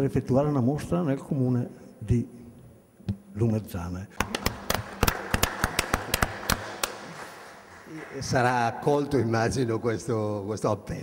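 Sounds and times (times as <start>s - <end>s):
people clapping: 4.2s - 9.4s.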